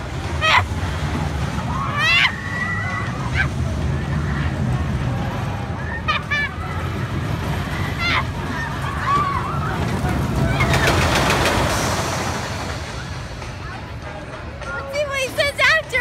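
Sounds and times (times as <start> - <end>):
roller coaster rumbling and rattling: 0.0 - 16.0.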